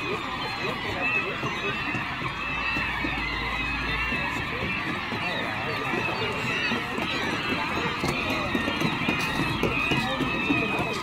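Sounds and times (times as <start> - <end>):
flock of gulls calling: 0.0 - 11.0.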